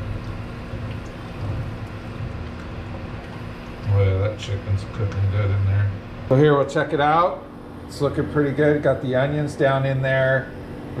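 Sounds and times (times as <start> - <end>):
faint constant tone: 0.0 - 11.0
room noise hum and hiss: 0.0 - 11.0.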